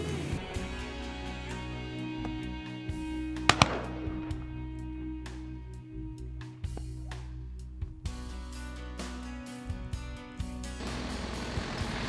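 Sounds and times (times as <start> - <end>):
shotgun shots: 3.4 - 4.5.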